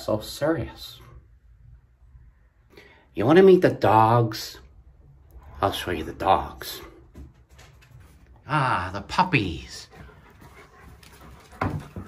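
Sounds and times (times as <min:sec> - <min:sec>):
dogs panting: 0:09.6 - 0:12.0.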